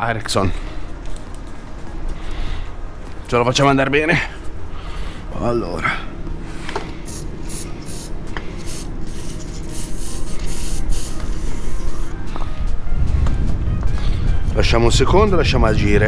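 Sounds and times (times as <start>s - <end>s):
aerosol can spraying: 7.1s - 12.1s.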